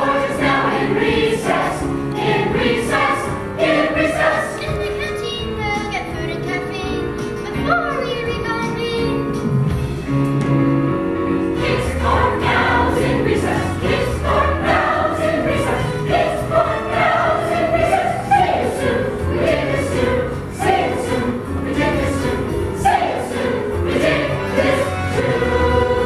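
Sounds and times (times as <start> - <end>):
chorus of children and adults singing: 0.0 - 4.6, 11.5 - 26.0.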